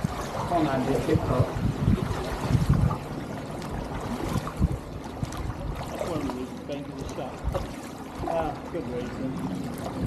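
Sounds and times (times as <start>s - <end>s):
water sloshing around kayak paddles: 0.0s - 10.0s.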